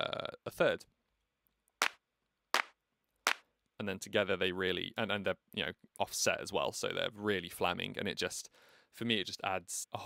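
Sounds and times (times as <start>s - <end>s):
layered hand-clap sample: 2.6s - 3.4s.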